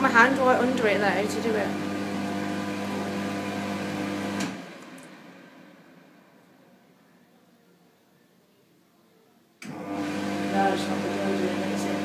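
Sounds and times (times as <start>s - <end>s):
electric hand dryer running: 0.0s - 5.0s, 9.6s - 12.0s.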